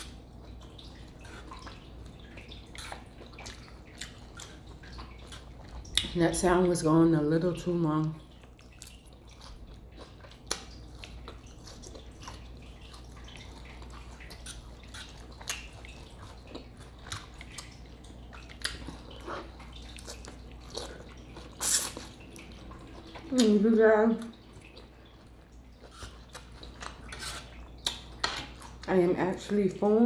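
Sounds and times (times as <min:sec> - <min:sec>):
low steady hum: 0:00.0 - 0:30.0
wet chewing mouth clicks: 0:01.1 - 0:06.2, 0:08.4 - 0:23.6.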